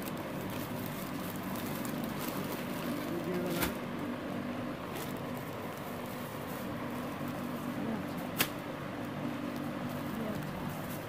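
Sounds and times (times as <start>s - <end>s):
rustling plastic wrapping: 0.0s - 4.1s, 4.8s - 11.0s.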